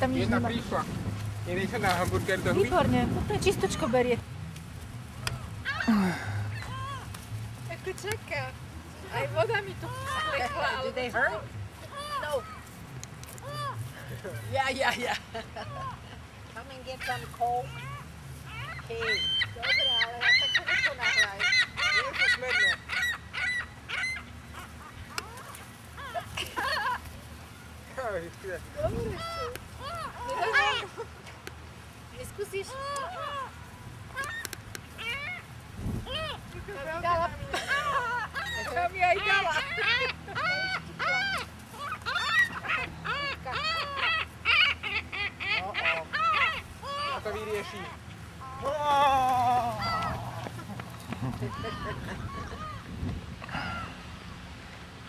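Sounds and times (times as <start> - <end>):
gulls squawking: 8.0 - 12.8, 15.6 - 27.8, 28.8 - 31.1, 32.4 - 54.0.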